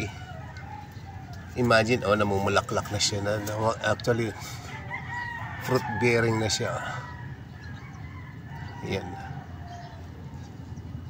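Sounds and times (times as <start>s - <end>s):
faint rooster crowing: 0.0s - 11.0s.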